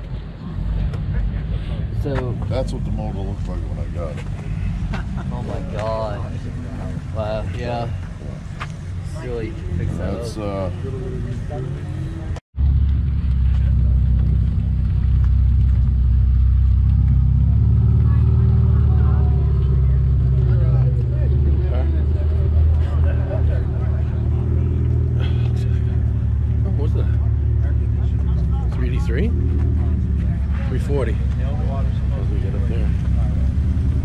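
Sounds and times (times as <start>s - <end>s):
people talking: 0.0s - 12.4s, 17.8s - 33.7s
car engine rumbling: 0.0s - 34.0s.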